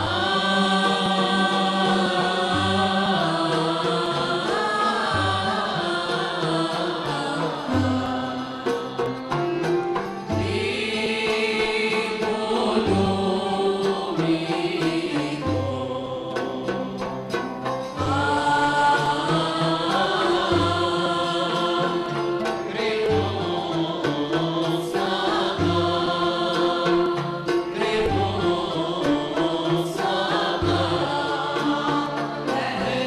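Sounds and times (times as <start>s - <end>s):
instrumental accompaniment: 0.0s - 33.0s
voices singing together: 0.0s - 33.0s.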